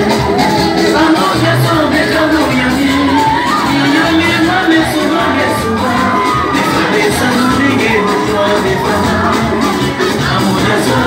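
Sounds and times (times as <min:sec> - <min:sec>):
lead singer through microphone: 0:00.0 - 0:11.0
live worship band: 0:00.0 - 0:11.0.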